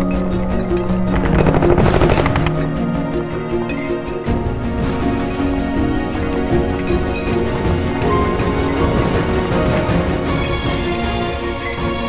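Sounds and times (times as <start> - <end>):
dramatic orchestral score: 0.0 - 12.0.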